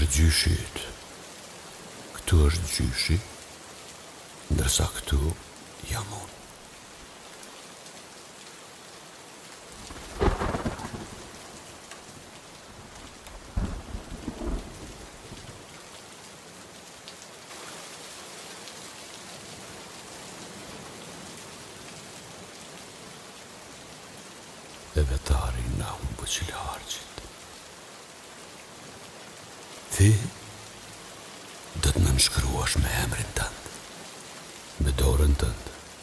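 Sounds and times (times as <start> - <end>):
steady rain: 0.0 - 36.0
thunder rumbles: 9.9 - 11.3.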